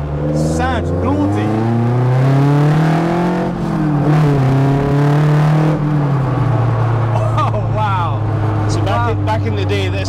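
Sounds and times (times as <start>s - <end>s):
car engine running: 0.0s - 10.0s
person speaking: 7.1s - 10.0s.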